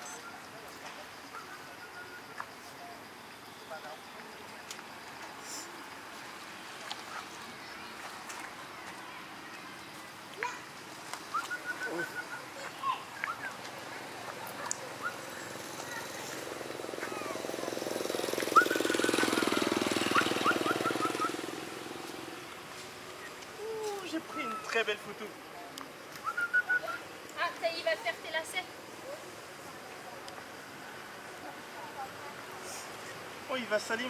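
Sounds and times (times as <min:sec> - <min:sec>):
motorcycle engine passing: 0:13.4 - 0:22.7.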